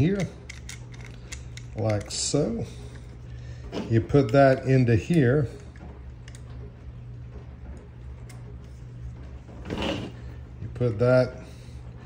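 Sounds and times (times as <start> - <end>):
low hum: 0.0 - 12.0
plastic parts clicking: 0.1 - 2.2.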